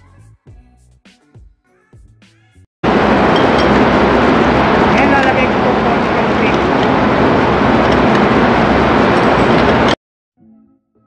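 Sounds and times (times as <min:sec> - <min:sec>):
engine room machinery noise: 0:02.8 - 0:10.0.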